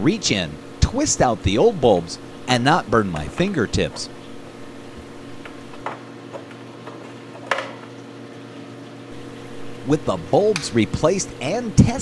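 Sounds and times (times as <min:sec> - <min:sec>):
aquarium equipment humming: 0:00.0 - 0:12.0.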